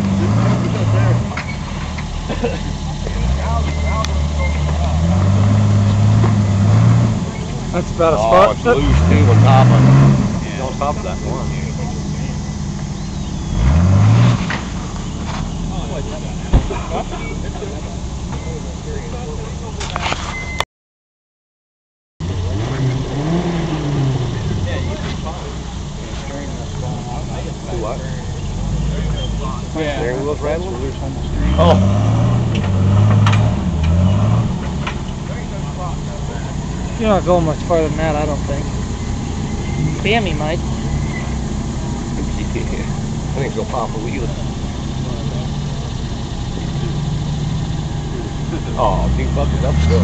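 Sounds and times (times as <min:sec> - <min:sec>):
people talking: 0:00.0 - 0:13.8, 0:15.1 - 0:20.5, 0:22.2 - 0:50.0
buggy engine running under load: 0:00.0 - 0:20.6, 0:22.2 - 0:50.0.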